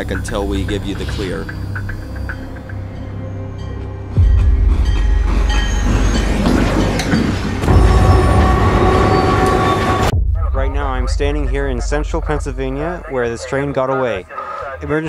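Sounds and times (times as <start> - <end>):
freight train rumble: 0.0 - 13.8.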